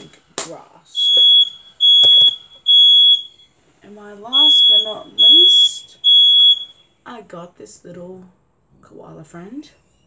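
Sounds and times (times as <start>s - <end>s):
electronic alarm beeping: 0.9s - 3.5s, 4.3s - 6.9s.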